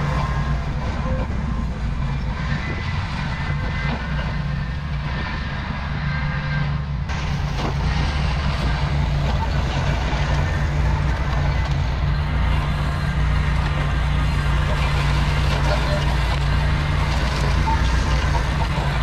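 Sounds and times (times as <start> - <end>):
tractor engine drone: 0.0 - 19.0.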